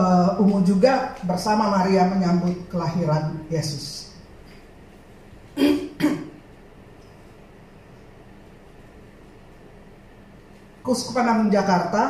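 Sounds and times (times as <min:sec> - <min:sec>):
woman coughing into microphone: 0:05.6 - 0:06.4.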